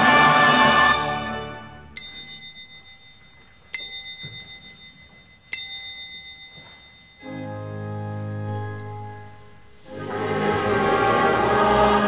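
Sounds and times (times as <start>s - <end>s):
hand bell ringing: 2.0s - 7.5s
pipe organ chord: 7.2s - 12.0s.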